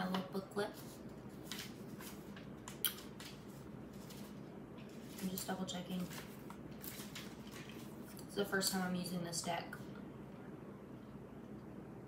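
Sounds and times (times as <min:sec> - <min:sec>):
booklet pages rustling: 0:00.0 - 0:08.7.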